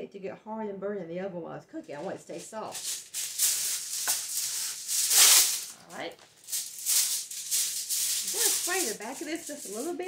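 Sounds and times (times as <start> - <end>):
aluminum foil crinkling: 2.0 - 10.0.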